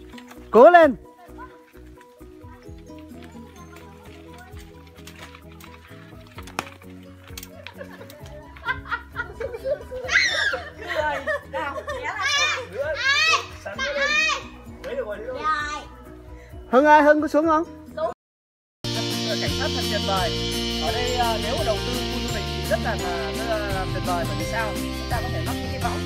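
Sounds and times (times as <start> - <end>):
high voices laughing and squealing: 7.6 - 14.5
music with long held notes: 18.9 - 26.0.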